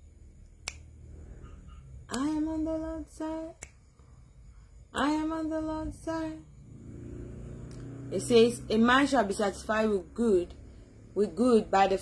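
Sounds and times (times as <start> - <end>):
faint low room hum: 0.0 - 12.0
sharp click like finger snap: 0.4 - 0.9, 2.1 - 2.3, 3.5 - 4.1.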